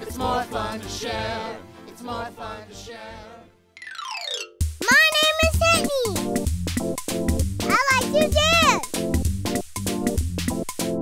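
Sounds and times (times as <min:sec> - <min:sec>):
children's song: 0:00.0 - 0:06.2, 0:07.7 - 0:08.9
person's voice: 0:04.8 - 0:06.2, 0:07.7 - 0:08.8
music with strong bass beat: 0:06.1 - 0:11.0.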